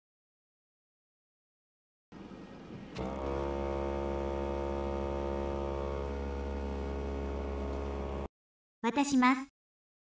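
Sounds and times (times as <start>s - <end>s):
robot electric hum: 2.2s - 8.3s.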